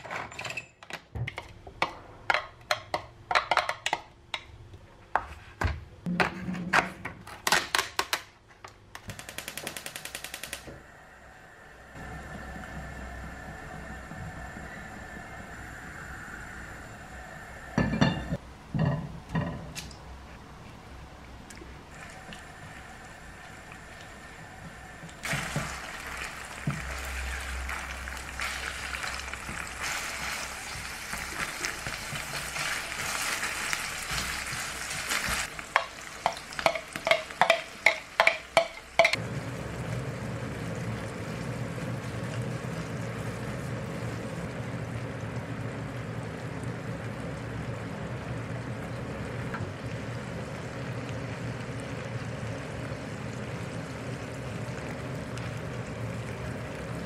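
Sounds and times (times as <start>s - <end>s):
food sizzling in a pan: 25.2s - 57.0s.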